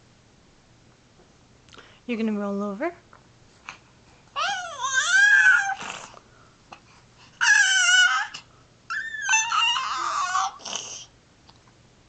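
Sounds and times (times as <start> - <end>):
baby squealing: 4.4 - 6.1, 7.4 - 11.1.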